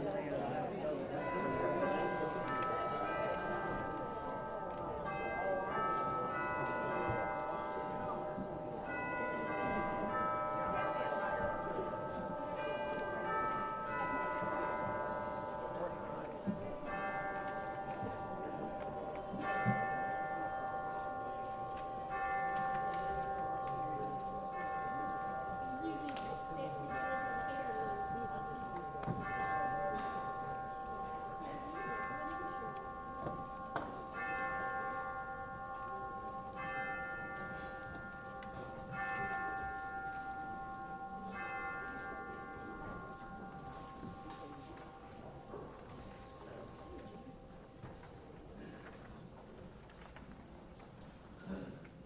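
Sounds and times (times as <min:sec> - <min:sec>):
murmur of congregation: 0:00.0 - 0:52.0.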